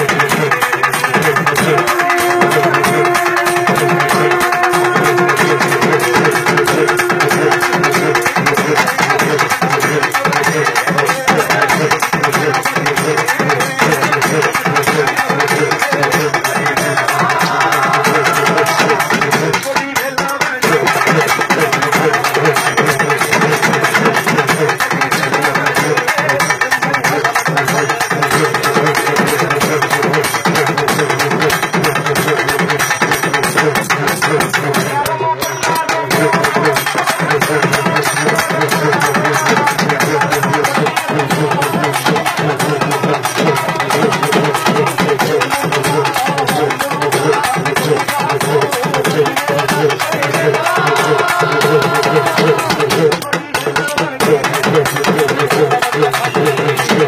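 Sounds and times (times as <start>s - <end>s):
drum troupe playing fast rhythm: 0.0s - 57.0s.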